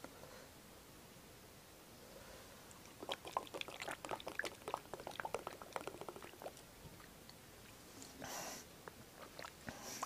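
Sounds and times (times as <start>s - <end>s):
person gulping from a bottle: 2.8s - 6.6s.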